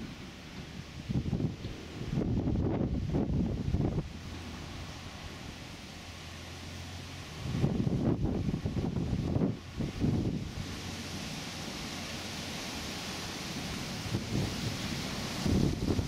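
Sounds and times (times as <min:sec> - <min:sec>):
wind buffeting microphone: 0:00.0 - 0:05.6, 0:06.7 - 0:12.0, 0:12.9 - 0:16.0
steady hiss: 0:00.0 - 0:16.0
tractor engine drone: 0:00.0 - 0:16.0.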